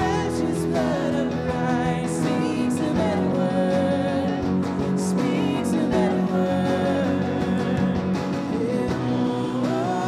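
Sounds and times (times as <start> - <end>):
electric guitars: 0.0 - 10.0
keyboard: 0.0 - 10.0
person singing: 0.0 - 10.0
strummed acoustic guitar: 0.0 - 10.0.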